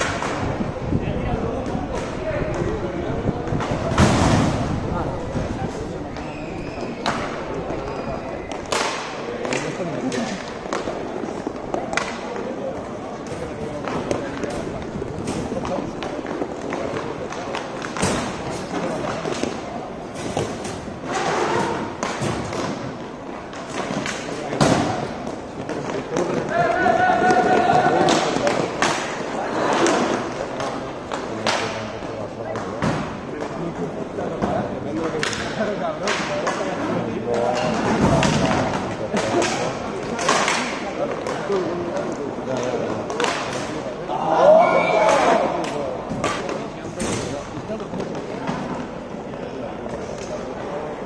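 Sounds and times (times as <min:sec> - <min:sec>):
hockey sticks and puck clacking: 0:00.0 - 0:00.6, 0:01.5 - 0:04.1, 0:05.9 - 0:44.3, 0:45.0 - 0:51.0
players shouting: 0:26.3 - 0:28.4, 0:44.0 - 0:45.7.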